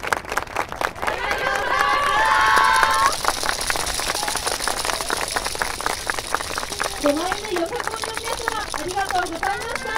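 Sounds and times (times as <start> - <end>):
outdoor crowd noise: 0.0 - 9.9
sharp claps and clacks: 0.0 - 9.9.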